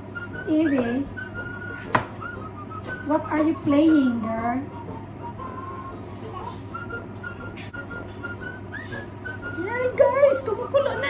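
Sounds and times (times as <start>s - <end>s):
high piping tune: 0.0s - 11.0s
steady low hum: 0.0s - 11.0s.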